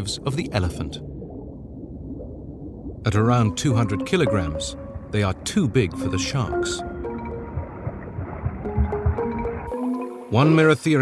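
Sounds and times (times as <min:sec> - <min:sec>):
underwater rumble of moving water: 0:00.0 - 0:09.7.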